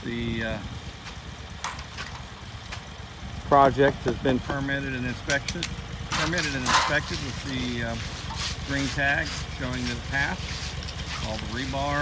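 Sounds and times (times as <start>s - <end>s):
small engine idling: 0.0s - 12.0s.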